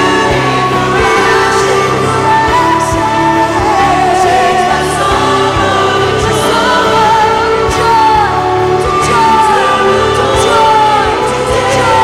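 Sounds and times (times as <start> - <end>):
band with drums and guitars: 0.0 - 12.0
voices singing together: 0.0 - 12.0.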